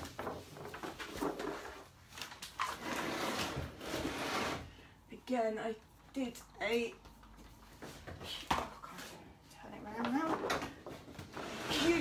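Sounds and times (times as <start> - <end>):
furniture scraping on floor: 2.6 - 4.8, 11.2 - 12.0.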